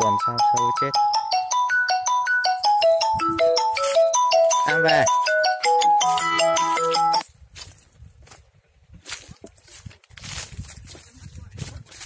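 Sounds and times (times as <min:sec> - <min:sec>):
phone ringtone electronic melody: 0:00.0 - 0:07.2.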